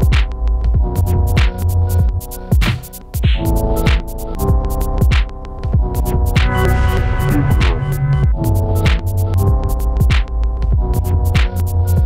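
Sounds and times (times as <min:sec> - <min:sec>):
high-pitched percussion ticks: 0:01.4 - 0:10.3
heavy bass hits: 0:03.3 - 0:11.5
sustained synth chord: 0:06.0 - 0:09.4.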